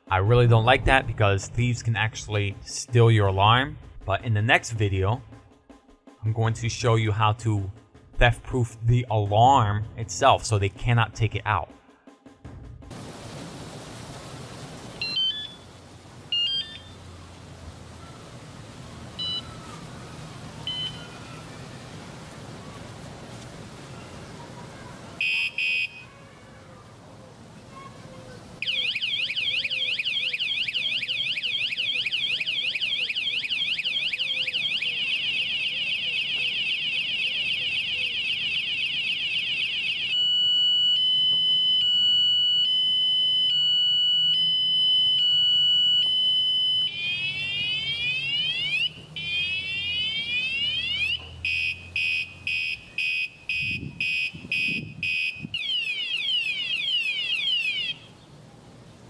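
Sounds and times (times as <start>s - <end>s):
electronic alarm siren: 15.0s - 15.6s, 16.3s - 17.0s, 19.2s - 19.5s, 20.7s - 21.1s, 25.2s - 26.0s, 28.6s - 58.1s.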